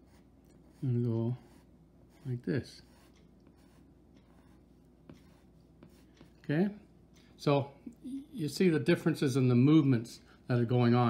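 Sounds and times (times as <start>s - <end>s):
pencil scratching on paper: 0.0s - 6.4s.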